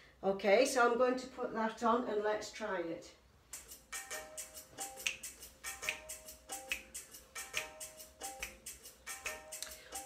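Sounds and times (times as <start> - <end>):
drum beat: 3.6 - 10.0.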